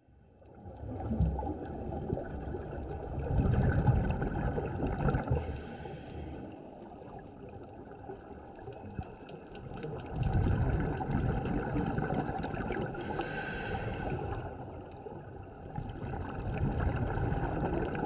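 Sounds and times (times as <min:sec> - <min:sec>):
fine crackle of clicks: 0:00.4 - 0:03.0, 0:07.4 - 0:13.2, 0:14.8 - 0:15.2, 0:17.3 - 0:18.0
underwater exhalation bubbles: 0:00.8 - 0:05.4, 0:09.9 - 0:13.1, 0:15.8 - 0:18.0.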